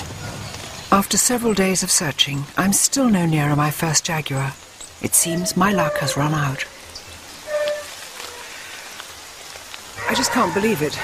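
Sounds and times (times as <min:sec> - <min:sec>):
rain on foliage: 0:00.0 - 0:11.0.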